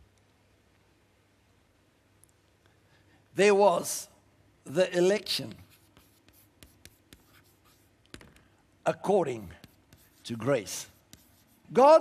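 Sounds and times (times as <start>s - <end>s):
chalk writing on chalkboard: 5.6s - 8.3s, 9.3s - 11.8s.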